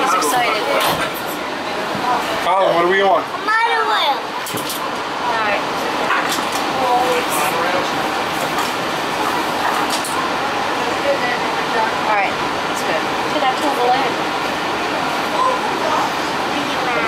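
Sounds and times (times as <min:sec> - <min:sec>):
air conditioning rushing: 0:00.0 - 0:17.0
faint passenger voices: 0:00.0 - 0:17.0.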